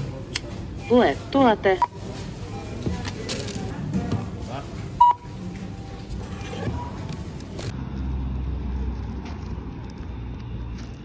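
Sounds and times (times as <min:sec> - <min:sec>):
groceries being handled: 0:00.0 - 0:11.0
scanner beep: 0:05.0 - 0:05.3.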